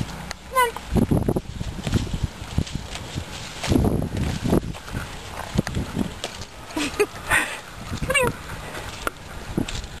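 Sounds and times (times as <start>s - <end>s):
leaves rustling: 0.0s - 10.0s.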